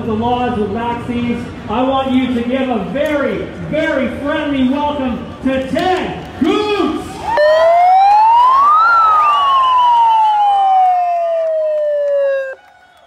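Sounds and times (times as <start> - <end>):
siren wailing: 7.3 - 12.6
faint wavering siren: 7.4 - 12.6.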